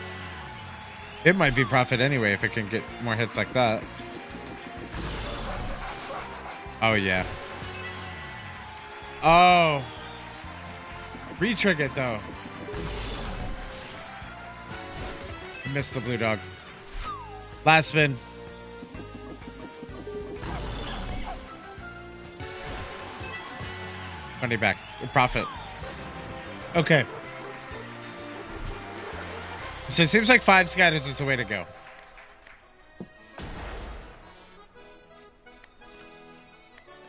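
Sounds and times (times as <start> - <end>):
slot game background music: 0.0 - 32.2
win celebration sounds: 0.0 - 32.8.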